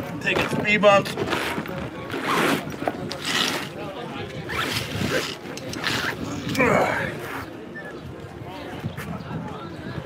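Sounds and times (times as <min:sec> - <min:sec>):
zipper being pulled: 0:02.2 - 0:03.7, 0:04.5 - 0:06.3.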